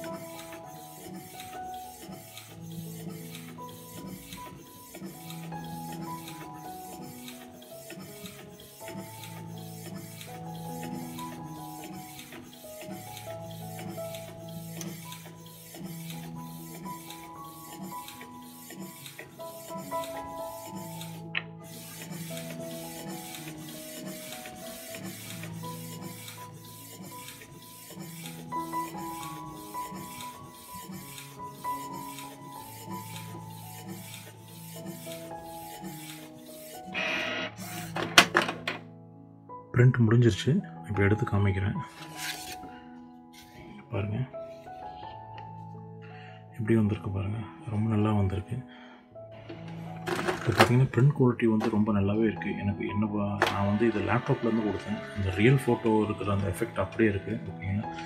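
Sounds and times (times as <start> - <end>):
printer printing: 0.0 - 38.8, 49.4 - 51.9, 53.3 - 58.0
background music with steady beat: 0.0 - 39.6, 49.3 - 58.0.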